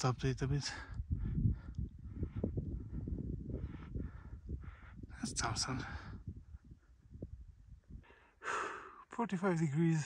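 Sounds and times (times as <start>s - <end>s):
wind rumble on microphone: 0.0s - 8.4s
person breathing hard: 1.2s - 5.1s, 8.0s - 9.0s.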